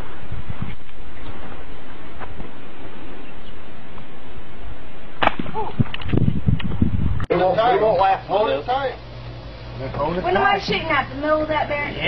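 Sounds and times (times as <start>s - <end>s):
wind noise on microphone: 0.0s - 7.3s
handgun shot: 5.2s - 5.6s.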